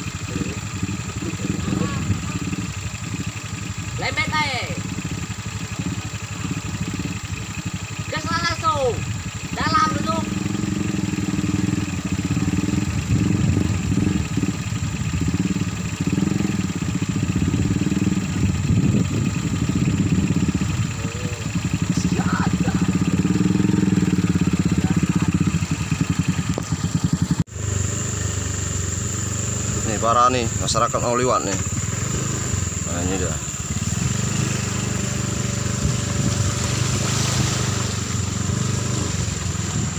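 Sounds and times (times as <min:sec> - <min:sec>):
small motorcycle engine revving: 0:00.0 - 0:39.9.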